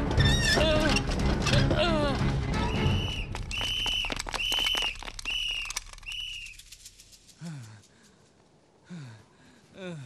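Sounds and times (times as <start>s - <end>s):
high whistle-like tone: 2.6s - 6.6s
scattered clicks: 3.4s - 8.2s.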